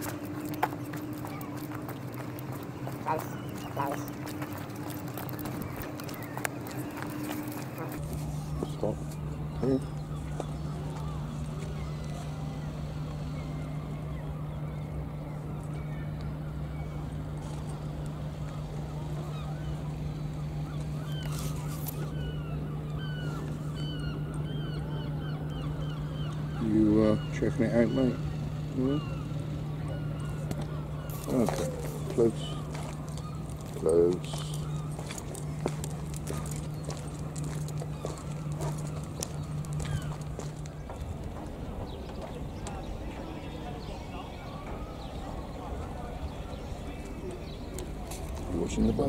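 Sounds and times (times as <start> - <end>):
footsteps on concrete: 0.0 - 8.3, 30.5 - 43.0
birds calling: 0.0 - 49.0
steady low hum: 0.0 - 49.0.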